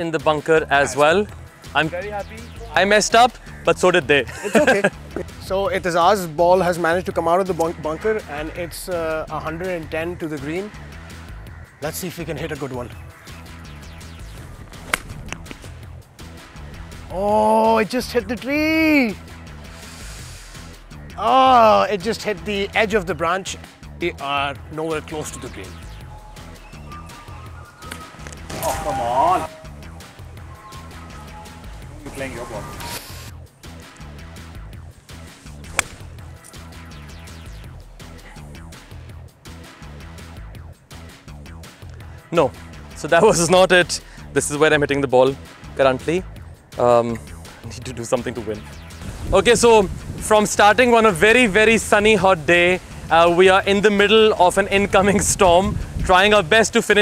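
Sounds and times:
quiet background music: 0.0 - 57.0
golf club striking ball: 14.7 - 15.8, 35.5 - 36.6.

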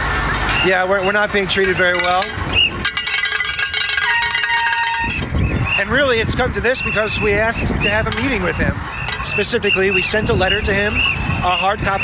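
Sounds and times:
lower ringing tone: 1.0 - 5.5
bell rung rapidly: 1.6 - 5.3.

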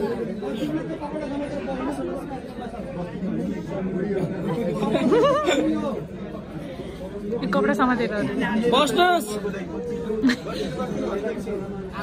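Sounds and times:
people talking in reverberant hall: 0.0 - 12.0.

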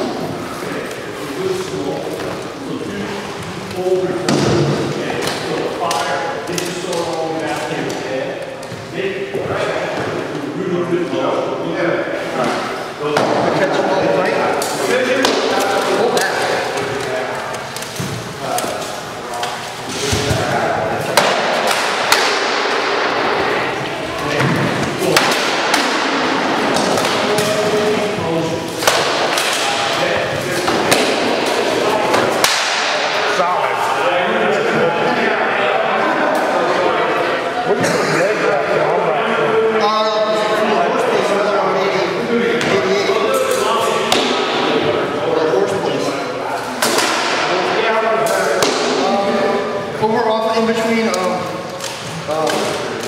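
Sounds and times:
indistinct echoing voices: 0.0 - 53.0.

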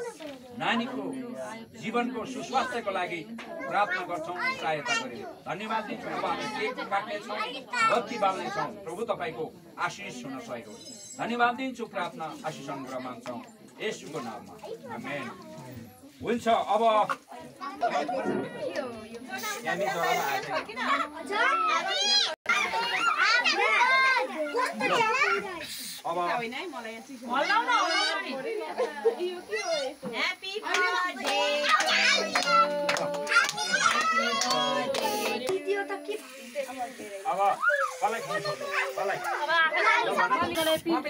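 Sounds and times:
overlapping voices praying: 0.0 - 10.2, 27.6 - 41.0
children and adults chattering: 0.0 - 41.0
spray can hiss: 19.3 - 20.4, 25.4 - 27.9, 29.4 - 41.0.

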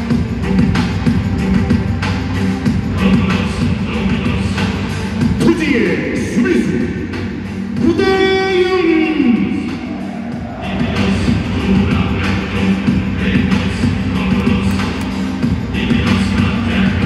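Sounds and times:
music over public address system: 0.0 - 17.0.

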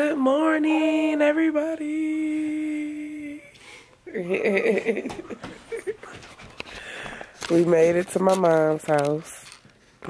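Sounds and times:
woman humming: 0.0 - 4.5.

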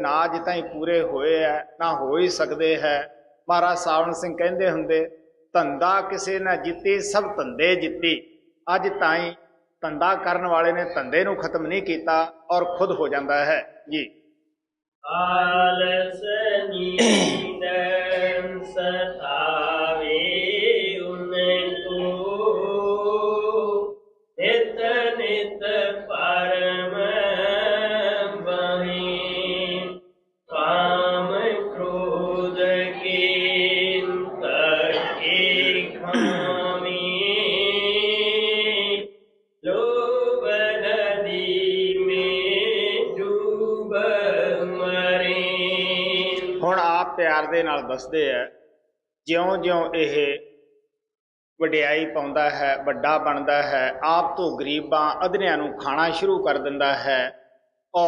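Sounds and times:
person chanting a hymn: 15.1 - 39.0, 39.6 - 48.0.

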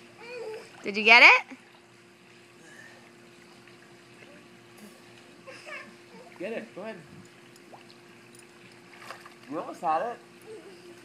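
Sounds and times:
faint steady hum: 0.0 - 11.0
pool water lapping and trickling: 0.0 - 11.0.

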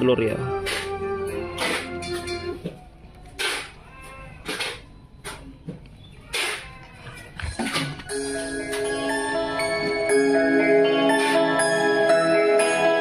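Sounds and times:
music through loudspeaker: 8.1 - 13.0.

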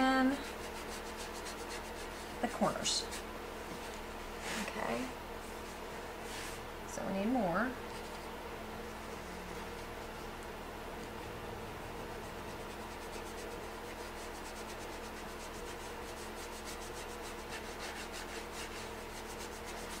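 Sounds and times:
stencil brush scratchy swishing: 0.0 - 3.3, 12.1 - 20.0.

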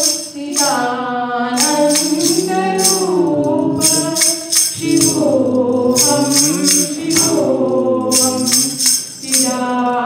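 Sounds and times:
hand percussion jingles: 0.0 - 0.9, 1.5 - 10.0
group singing a hymn: 0.0 - 10.0.

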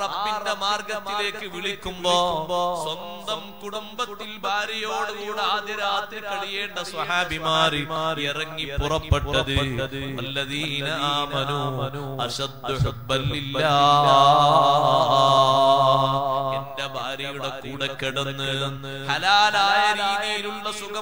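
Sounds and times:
man chanting: 0.0 - 21.0.

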